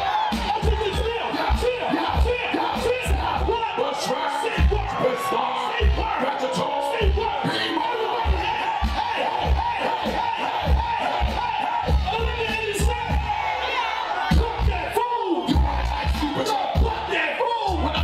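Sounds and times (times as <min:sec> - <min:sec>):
heavy bass hip hop beat: 0:00.0 - 0:18.0
rappers rapping into microphones: 0:00.0 - 0:18.0.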